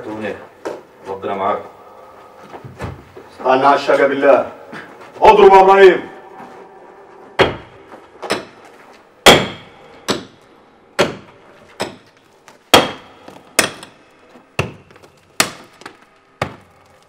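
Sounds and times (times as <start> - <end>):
hand tool striking stone: 11.0 - 14.0, 14.6 - 16.8.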